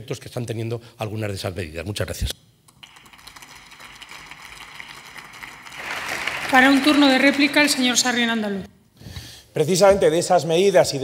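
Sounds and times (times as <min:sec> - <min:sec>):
light applause: 0:02.8 - 0:08.6.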